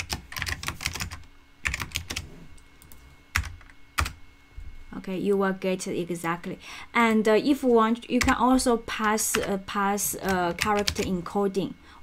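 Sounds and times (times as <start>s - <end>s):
computer keyboard keystrokes: 0.0s - 2.2s, 2.8s - 4.2s, 8.2s - 8.4s, 10.2s - 11.1s.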